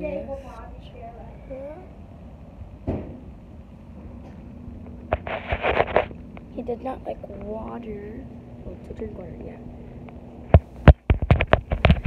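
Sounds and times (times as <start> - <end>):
phone rubbing against fur: 5.1 - 6.2.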